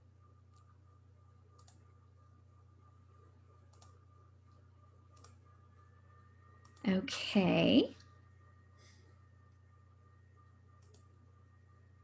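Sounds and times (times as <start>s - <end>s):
low steady hum: 0.0s - 12.0s
computer mouse clicks: 0.5s - 0.8s, 1.5s - 1.9s, 3.7s - 5.4s, 6.6s - 6.8s, 10.8s - 11.2s.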